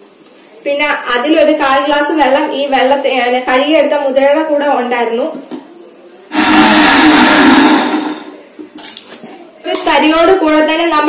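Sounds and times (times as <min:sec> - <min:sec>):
electric mixer grinder running: 0:06.3 - 0:08.3.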